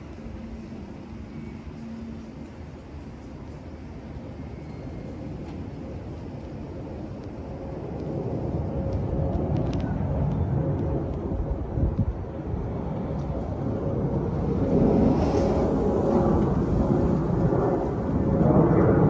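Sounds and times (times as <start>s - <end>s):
jet airliner flying overhead: 0.0s - 19.0s.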